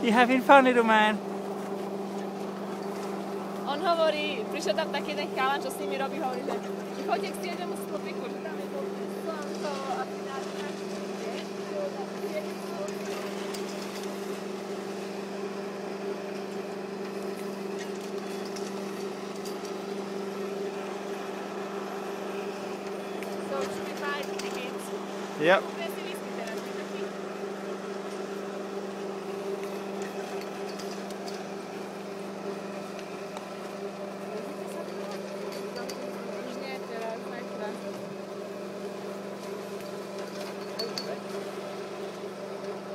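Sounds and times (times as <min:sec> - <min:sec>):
steady machine hum: 0:00.0 - 0:42.9.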